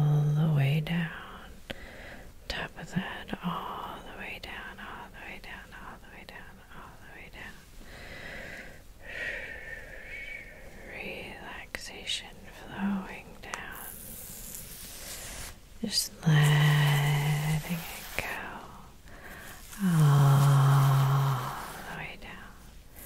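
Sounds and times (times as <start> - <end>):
person whispering: 2.5 - 7.6, 9.8 - 22.6.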